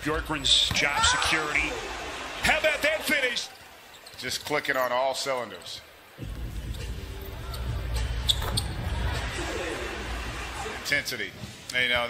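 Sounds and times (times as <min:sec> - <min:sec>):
sneaker squeaks: 0:03.6 - 0:04.5, 0:06.7 - 0:08.9.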